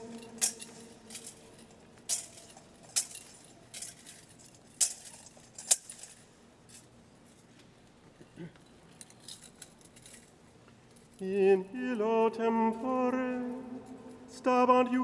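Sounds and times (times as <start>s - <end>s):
thurible chains clinking: 0.0s - 7.4s, 8.4s - 15.0s.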